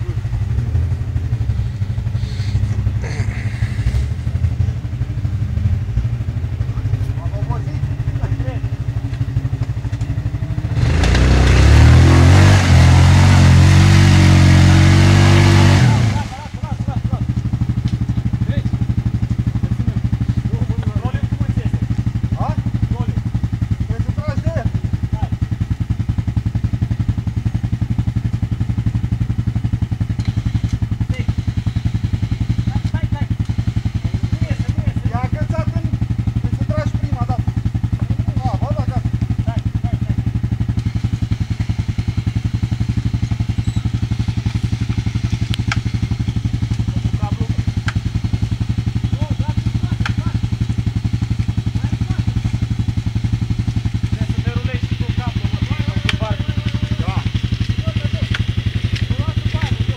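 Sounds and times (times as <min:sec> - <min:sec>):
atv engine idling and revving: 0:00.0 - 0:59.9.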